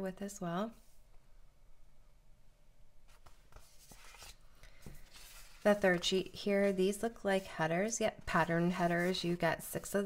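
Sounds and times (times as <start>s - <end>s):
paper sheets rustling: 3.1s - 9.6s.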